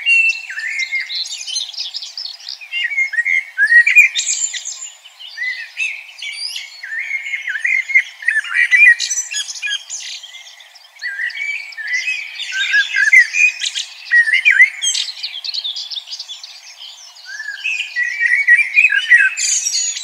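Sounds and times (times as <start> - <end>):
songbird warbling song: 0.0 - 20.0.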